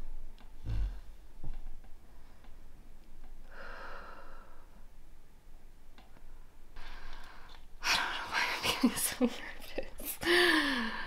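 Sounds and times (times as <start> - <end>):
woman breathing: 3.4 - 4.9, 6.4 - 8.5, 10.2 - 11.0.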